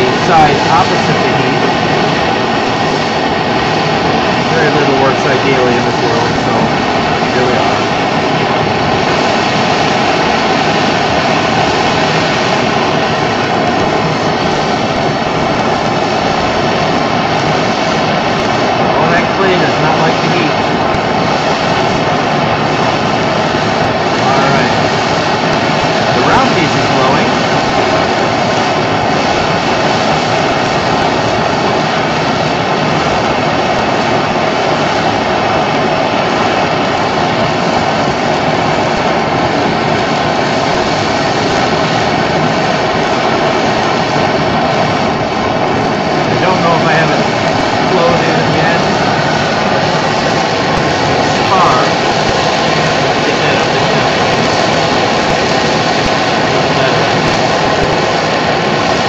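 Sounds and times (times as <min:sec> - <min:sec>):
gas torch flame rushing: 0:00.0 - 0:59.0.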